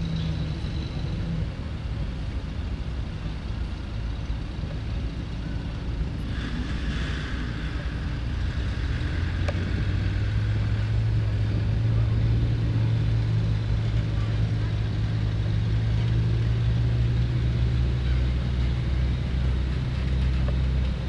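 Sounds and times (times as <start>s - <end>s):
military vehicle engines droning: 0.0s - 21.0s.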